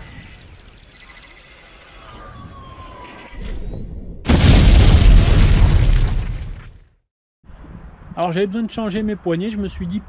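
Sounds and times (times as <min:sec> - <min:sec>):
explosion boom rumbling: 0:04.3 - 0:06.8.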